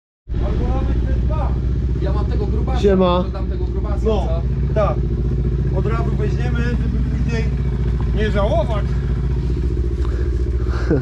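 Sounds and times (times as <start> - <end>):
vehicle engine idling: 0.3 - 11.0.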